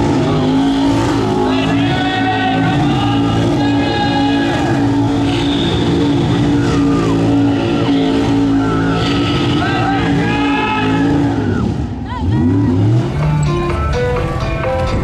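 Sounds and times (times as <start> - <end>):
tires squealing on pavement: 0.0 - 13.5
truck engine revving: 0.0 - 15.0.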